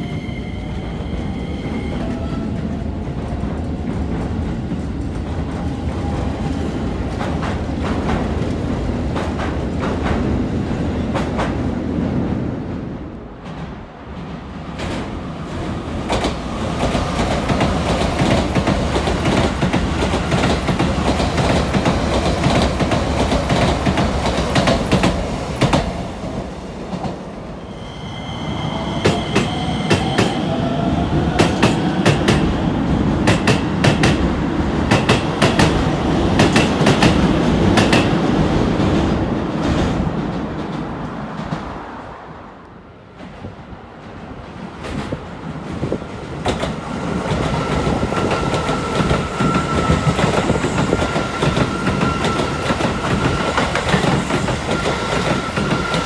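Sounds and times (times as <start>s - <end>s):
train high whine: 0.0s - 7.6s, 16.0s - 38.6s, 46.4s - 56.0s.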